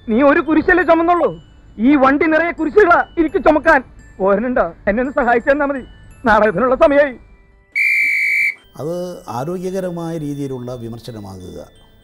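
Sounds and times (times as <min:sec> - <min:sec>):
high-pitched whistle tone: 0:07.8 - 0:08.8.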